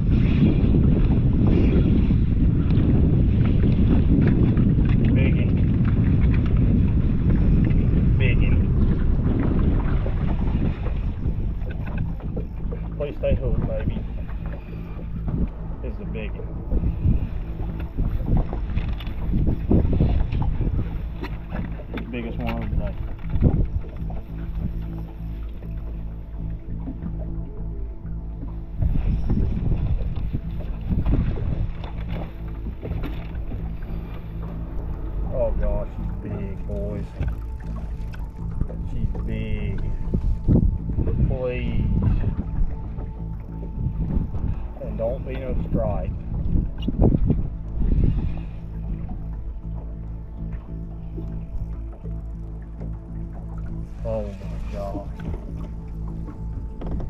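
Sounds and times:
steady low hum: 0.0 - 57.0
wind buffeting microphone: 0.0 - 57.0.

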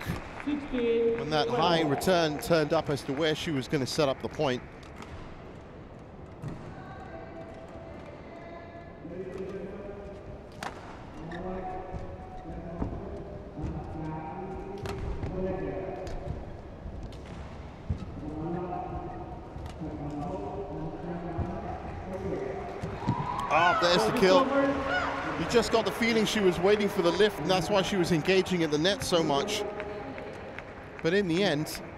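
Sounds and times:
racket hitting shuttlecock: 10.5 - 11.1.

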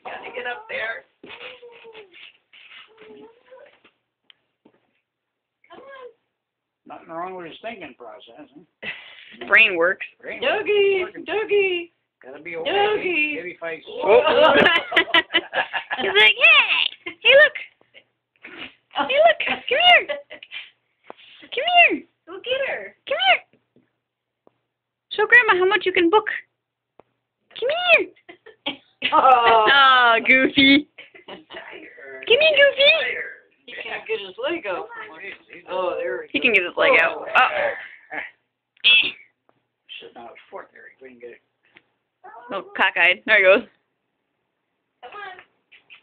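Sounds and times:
pet animal whining: 0.0 - 3.8.

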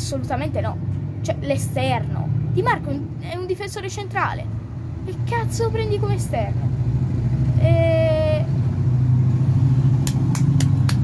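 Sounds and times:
sharp hand claps: 10.0 - 11.0.

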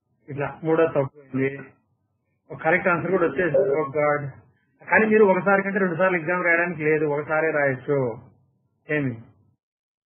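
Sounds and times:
man narrating: 2.5 - 8.2.

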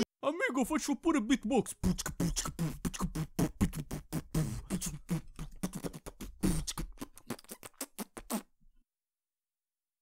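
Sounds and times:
beatboxing: 1.3 - 8.5.

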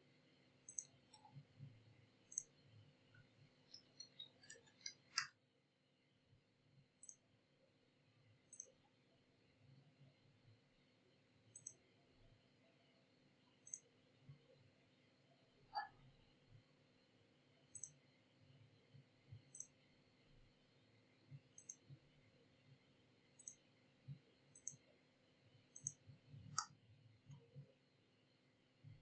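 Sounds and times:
louder ticks: 0.7 - 1.3, 17.8 - 18.0, 21.6 - 21.8, 24.6 - 24.8
computer mouse clicks: 0.7 - 1.4, 2.3 - 2.6, 3.7 - 5.3, 7.0 - 7.2, 8.5 - 8.8, 11.5 - 11.8, 13.6 - 13.9, 15.7 - 15.9, 17.7 - 18.0, 19.4 - 19.8, 21.6 - 22.0, 23.4 - 23.6, 24.5 - 24.8, 25.7 - 27.4.

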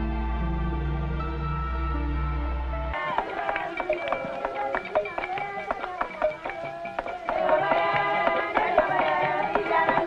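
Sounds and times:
drum ensemble playing: 3.0 - 10.0
voices singing or chanting: 3.0 - 10.0.

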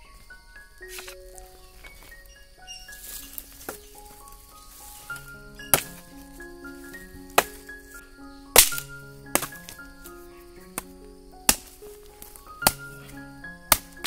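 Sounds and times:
background music with held notes: 0.0 - 14.0
blade chopping wooden stick: 5.7 - 6.0, 8.6 - 9.8, 13.7 - 14.0.

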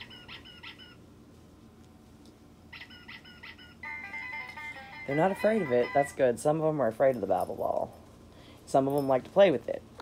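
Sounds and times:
electronic toy playing a tune: 2.7 - 6.2.

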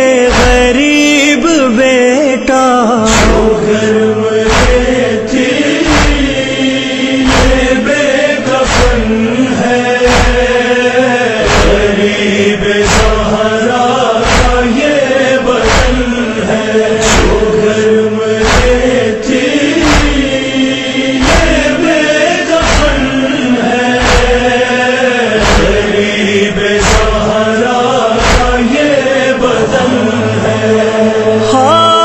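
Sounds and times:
voices chanting a lament: 0.0 - 32.0
steady low thumps: 3.1 - 7.9, 8.6 - 28.9.

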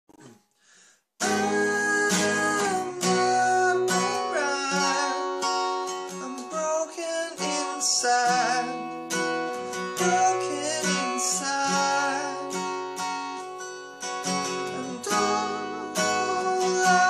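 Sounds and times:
man singing: 1.2 - 12.8, 14.3 - 17.0
acoustic guitar strumming: 1.2 - 17.0.

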